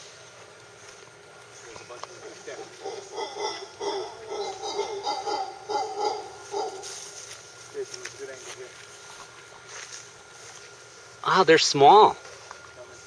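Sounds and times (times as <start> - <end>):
howler monkeys calling: 2.1 - 7.2.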